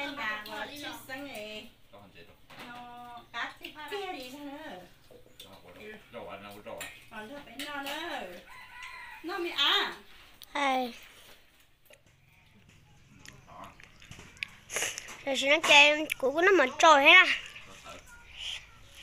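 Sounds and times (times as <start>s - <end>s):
rooster crowing: 8.4s - 9.9s.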